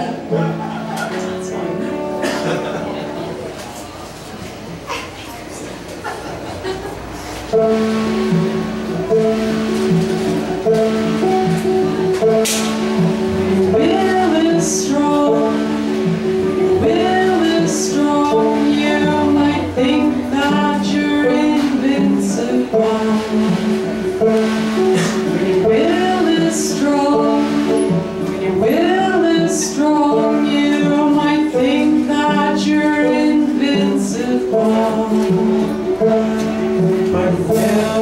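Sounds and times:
strummed banjo: 0.0s - 3.8s, 7.5s - 38.0s
live band playing: 7.0s - 38.0s
man singing: 13.6s - 23.7s, 25.1s - 36.3s, 37.0s - 38.0s.

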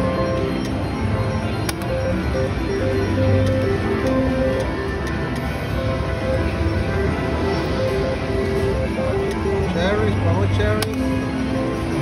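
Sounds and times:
slot machine jingle tones: 0.0s - 5.0s.

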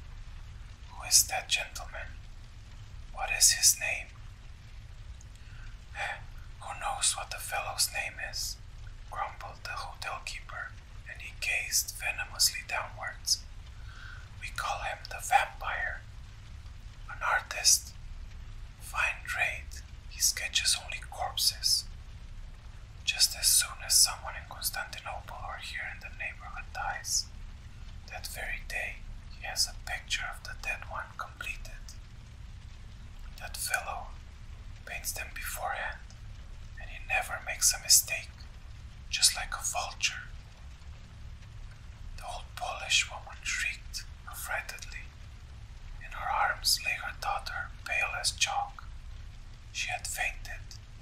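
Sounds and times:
faint low background noise: 0.0s - 51.0s
low background rumble: 0.0s - 51.0s
person whispering: 0.8s - 2.2s, 3.1s - 4.2s, 5.3s - 16.1s, 17.0s - 18.0s, 18.8s - 21.9s, 23.0s - 27.3s, 28.1s - 32.0s, 33.3s - 34.2s, 34.8s - 38.5s, 39.1s - 40.4s, 42.2s - 45.2s, 45.9s - 48.9s, 49.7s - 50.9s.

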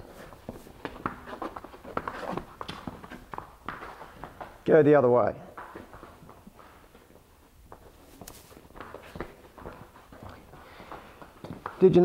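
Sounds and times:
footsteps: 0.0s - 12.0s
horse hooves walking: 0.0s - 12.0s.

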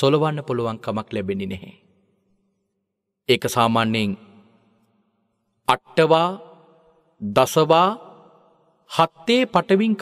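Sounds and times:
man preaching: 0.0s - 1.8s, 3.3s - 4.4s, 5.7s - 6.6s, 7.2s - 10.0s.

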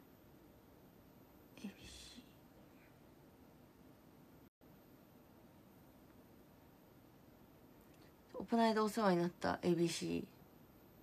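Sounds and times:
woman softly speaking: 1.6s - 2.5s.

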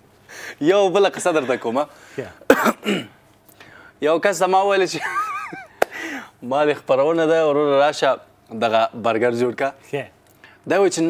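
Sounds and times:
man coughing: 2.5s - 3.2s.

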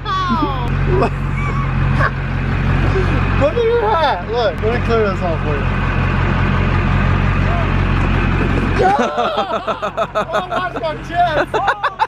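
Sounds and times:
truck engine idling: 0.0s - 12.0s.

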